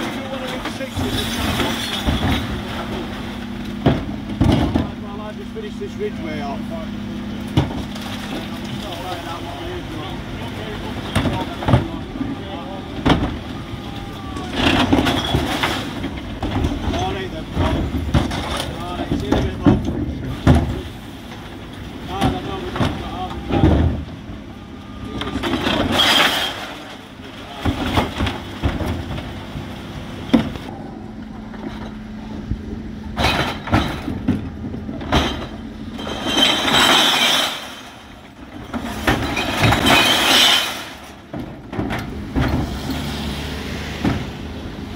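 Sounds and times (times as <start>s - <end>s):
bin lift tipping bins: 0.0s - 44.9s
truck engine running: 0.0s - 44.9s
glass and tins clattering: 35.1s - 41.2s.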